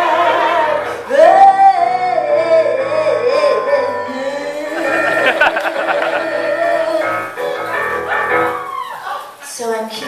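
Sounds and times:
woman singing with vibrato: 0.0 - 7.3
keyboard accompaniment: 1.5 - 8.6.

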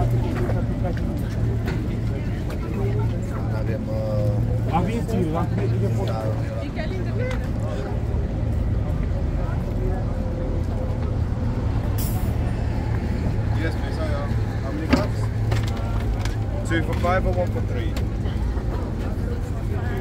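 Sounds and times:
passers-by talking: 0.0 - 20.0
road traffic rumble: 0.0 - 20.0.

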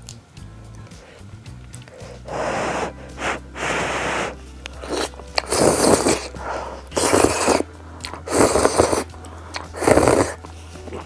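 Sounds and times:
noodles being slurped: 2.0 - 11.0.

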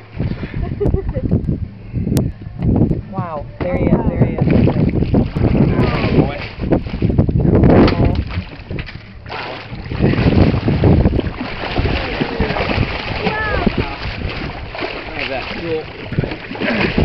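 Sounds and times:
wind buffeting microphone: 0.0 - 17.0
water sloshing at boat side: 3.1 - 17.0
voices: 11.8 - 14.2.

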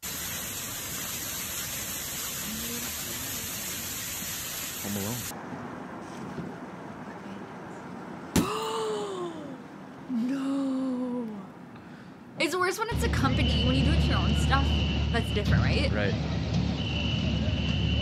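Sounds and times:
water gushing onto car: 0.0 - 5.3.

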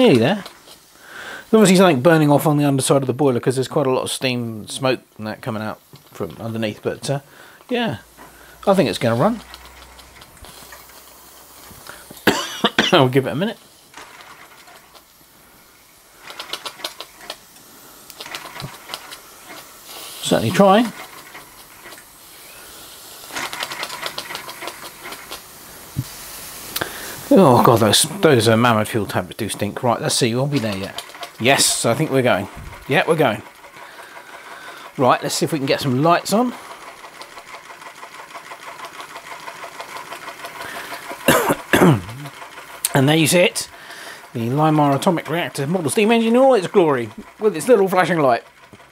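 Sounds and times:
toy steam engine clicking: 0.0 - 48.9
engine coughs: 11.9 - 13.1, 40.8 - 42.4.

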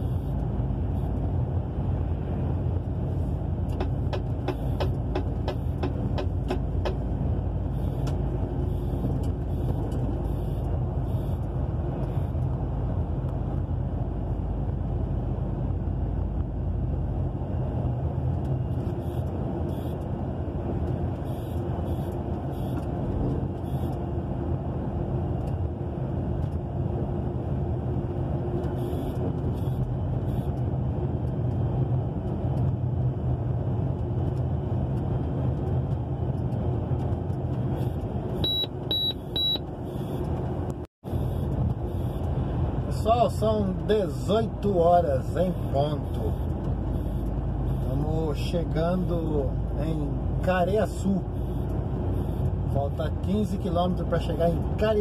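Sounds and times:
diesel engine drone: 0.0 - 55.0
road and tyre noise: 0.0 - 55.0.

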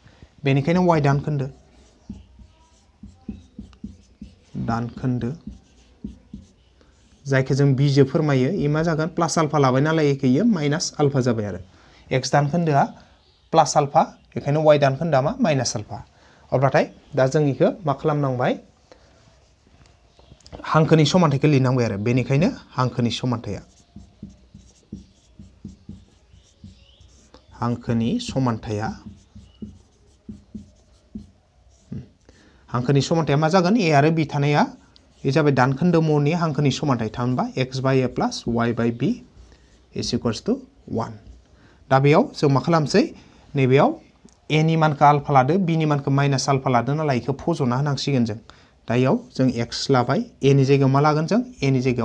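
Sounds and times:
person speaking: 0.4 - 13.0, 13.6 - 52.0
marker writing on whiteboard: 0.6 - 7.8, 22.4 - 32.3, 33.0 - 41.5.

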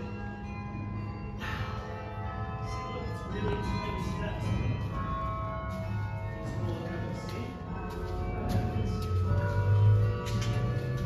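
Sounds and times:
carillon bells playing a tune: 0.0 - 11.0.

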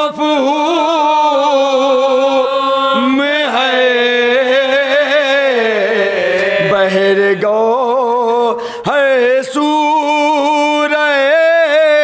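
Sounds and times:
men chanting into microphone: 0.0 - 12.0.

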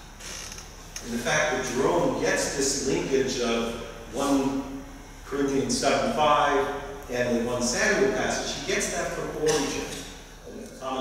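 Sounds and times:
man lecturing: 1.0 - 11.0.

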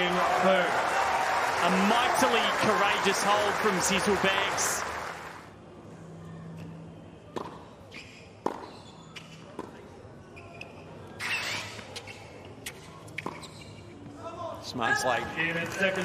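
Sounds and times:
tennis ball bouncing on court: 7.3 - 7.7, 8.4 - 9.8.

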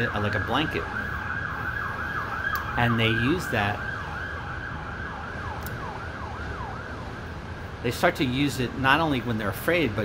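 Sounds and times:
emergency siren: 0.0 - 7.8
low city rumble: 0.0 - 10.0.

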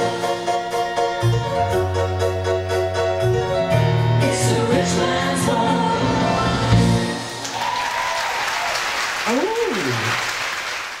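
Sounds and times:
live band song: 0.0 - 7.8
audience applauding: 7.3 - 11.0
person calling out in crowd: 9.3 - 10.2.

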